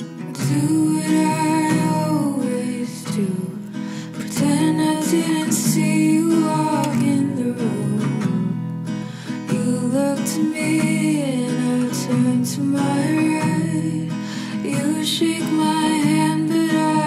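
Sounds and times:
song with acoustic guitar: 0.0 - 17.0.

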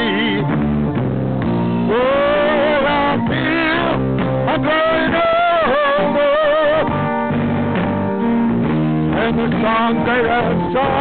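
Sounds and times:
bass line: 0.0 - 11.0
held guitar notes: 0.0 - 11.0.

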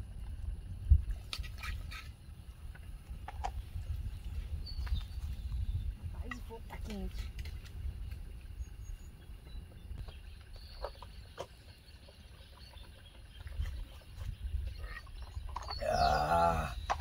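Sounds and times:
low steady rumble: 0.0 - 16.0.

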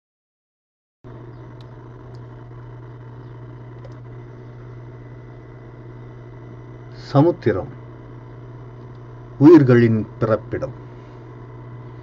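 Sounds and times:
steady low hum: 1.1 - 12.0
faint clicks: 1.5 - 4.1, 8.7 - 9.1.

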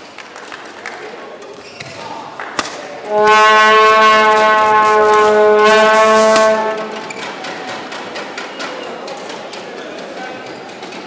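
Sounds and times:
horn long held note: 3.1 - 7.1.

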